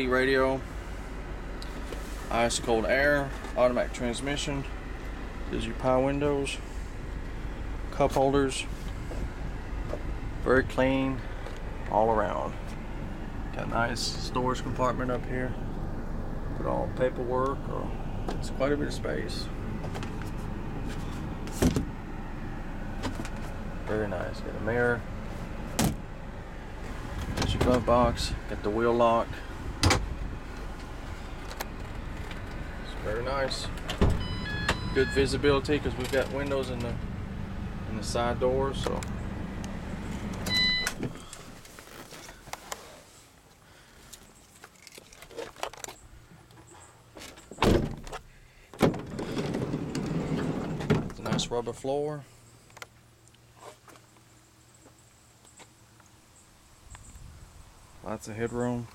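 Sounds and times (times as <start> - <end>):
steady low hum: 0.0 - 44.4
heavy van door thunk: 25.7 - 26.1, 27.1 - 28.1, 29.8 - 30.2, 33.8 - 35.0, 47.6 - 48.2
sliding door rumbling on track: 49.0 - 51.3.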